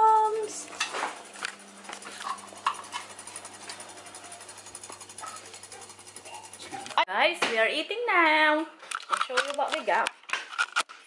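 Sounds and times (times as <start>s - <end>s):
fine fast rattle: 0.0s - 7.0s
kitchen appliance humming: 0.0s - 8.6s.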